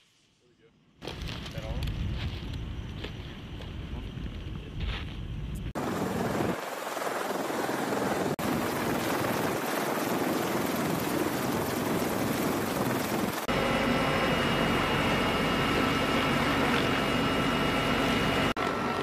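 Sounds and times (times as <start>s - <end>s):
high turbine whine: 0.8s - 19.0s
helicopter rotor and turbine noise: 1.0s - 19.0s
helicopter cabin noise: 5.8s - 19.0s.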